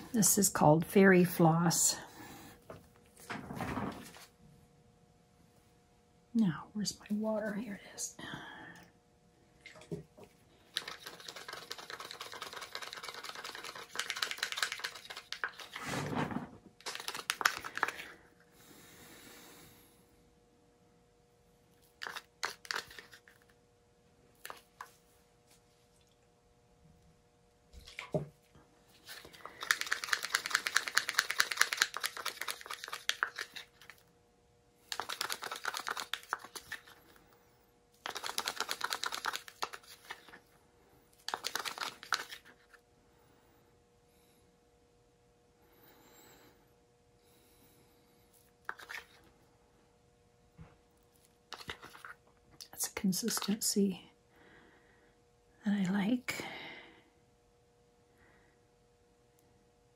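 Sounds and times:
stick stirring paint in plastic cup: 10.6s - 18.1s, 21.8s - 23.5s, 29.0s - 34.0s, 34.9s - 37.2s, 38.0s - 40.4s, 41.2s - 42.8s, 48.6s - 49.2s, 51.5s - 52.2s, 53.1s - 53.6s.

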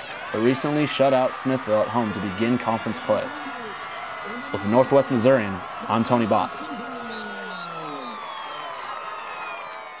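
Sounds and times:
sustained tones sliding down: 6.5s - 8.6s.

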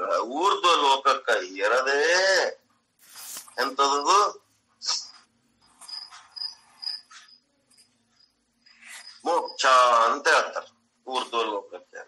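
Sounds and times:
insect chirping: 5.6s - 10.2s.

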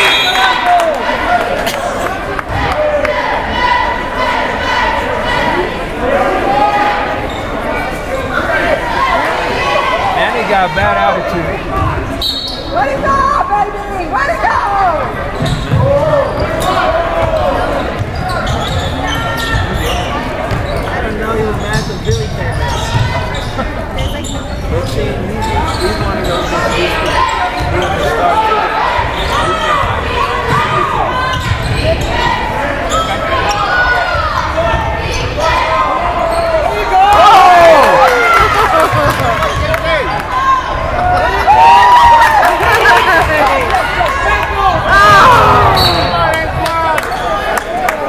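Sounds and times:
spectators chattering: 0.0s - 48.0s
sneakers squeaking: 7.1s - 8.5s, 11.8s - 13.1s, 15.1s - 37.0s, 38.9s - 41.4s, 44.8s - 47.6s.

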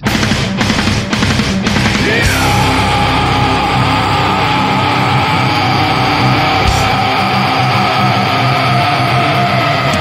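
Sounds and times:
distorted electric guitars: 0.0s - 10.0s
heavy metal music: 0.0s - 10.0s.

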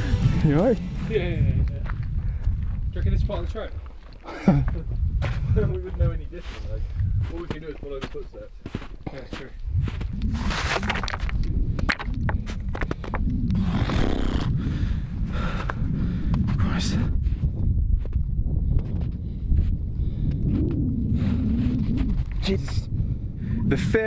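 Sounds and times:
wind buffeting microphone: 0.0s - 24.0s
footsteps crunching in snow: 5.2s - 11.3s
man breathing: 14.5s - 16.5s.

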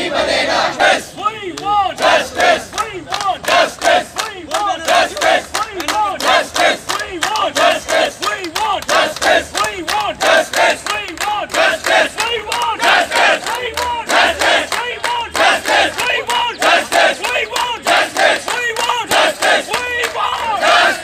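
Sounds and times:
crowd chanting: 0.0s - 21.0s.

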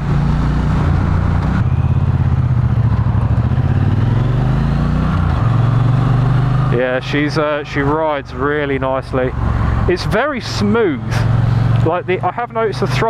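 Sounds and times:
motorcycle engine running: 0.0s - 13.0s.

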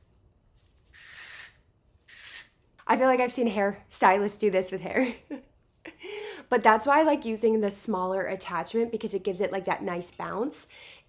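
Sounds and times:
aerosol spray hiss: 0.9s - 2.5s.

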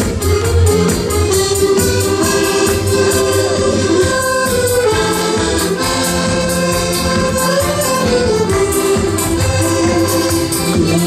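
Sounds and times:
accordion band playing: 0.0s - 11.0s.

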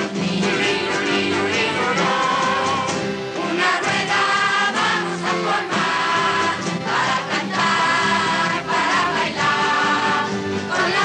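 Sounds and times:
choir singing: 0.0s - 11.0s
folk pop band playing: 0.0s - 11.0s.

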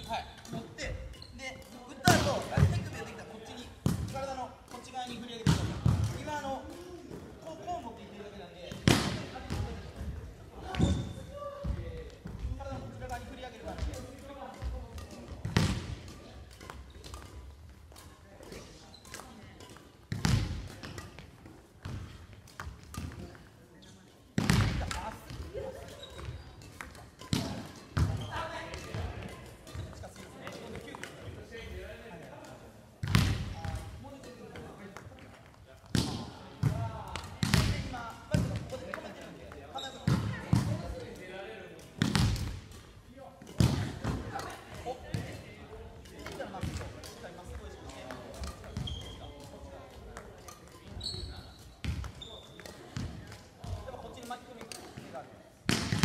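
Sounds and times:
rackets hitting shuttlecocks: 0.0s - 7.3s, 8.7s - 23.4s, 24.4s - 31.4s, 33.0s - 51.0s.

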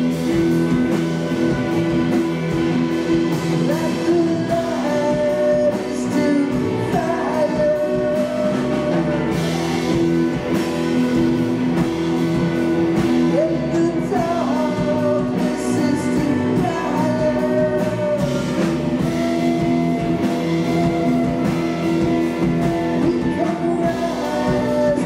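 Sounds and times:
live rock band playing: 0.0s - 25.0s
woman singing lead: 3.6s - 10.6s, 13.3s - 25.0s.

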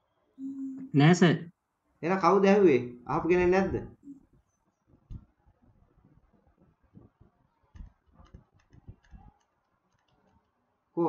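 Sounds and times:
computer mouse clicks: 7.8s - 9.3s.

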